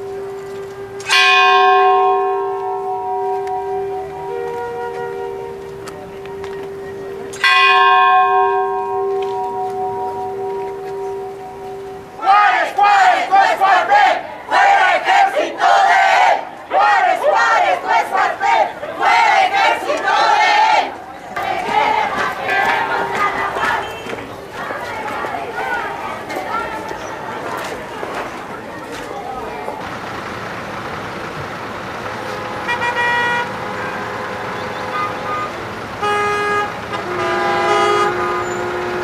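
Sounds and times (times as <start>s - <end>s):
large bell ringing: 0.0s - 12.3s
crowd shouting chants: 12.0s - 29.8s.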